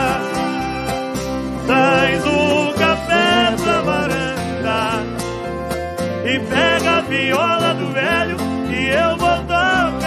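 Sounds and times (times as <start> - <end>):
slow country ballad with guitars: 0.0 - 10.0.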